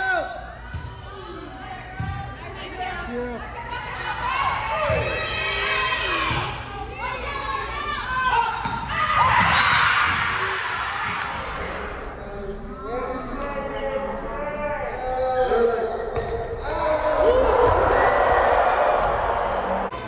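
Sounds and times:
players shouting: 0:03.5 - 0:12.0
crowd cheering: 0:07.3 - 0:12.1, 0:17.1 - 0:20.0.

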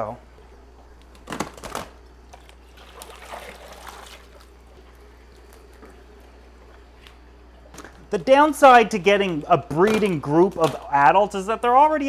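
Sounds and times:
steady low hum: 0:00.0 - 0:12.0
water pouring into aquarium: 0:02.6 - 0:05.5.

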